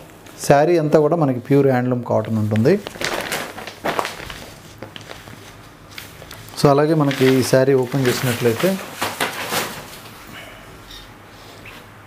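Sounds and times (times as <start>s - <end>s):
cloth rustling and swishing: 2.4s - 10.2s.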